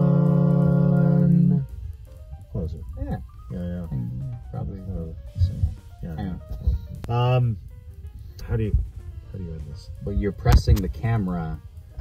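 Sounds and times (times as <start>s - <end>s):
men singing in harmony: 0.0s - 1.6s.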